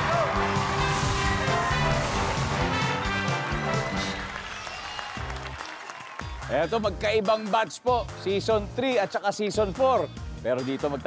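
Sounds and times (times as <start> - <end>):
audience applauding: 0.0 - 6.8
upbeat game-show music: 0.0 - 11.0.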